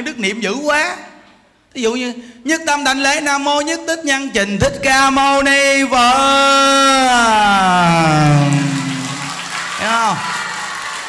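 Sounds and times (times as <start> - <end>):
man chanting: 2.7 - 10.2
short rising and falling vocal: 7.4 - 9.8
audience laughing: 7.8 - 11.0
audience clapping: 8.0 - 11.0.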